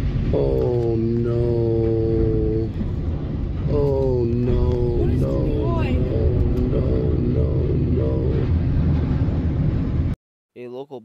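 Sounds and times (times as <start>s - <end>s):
train cars grinding and rumbling: 0.0s - 10.2s.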